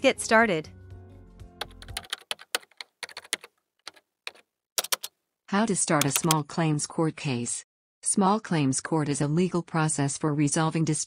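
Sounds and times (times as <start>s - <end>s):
background music: 0.0s - 2.6s
keyboard key clicks: 1.6s - 5.1s, 6.0s - 6.4s.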